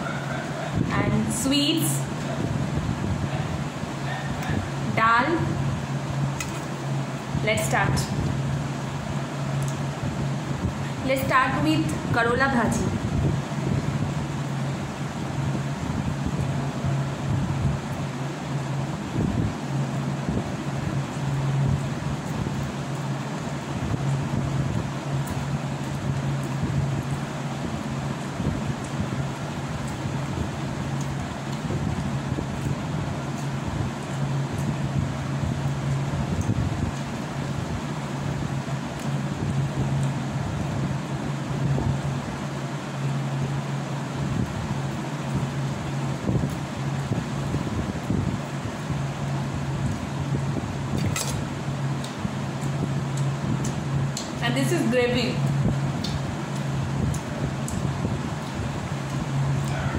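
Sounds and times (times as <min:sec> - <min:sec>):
electric fan humming: 0:00.0 - 0:59.9.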